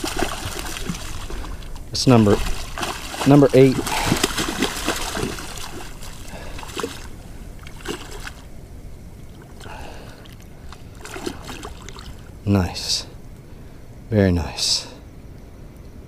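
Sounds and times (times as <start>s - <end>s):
fish splashing at water surface: 0.0s - 8.6s, 9.2s - 12.4s.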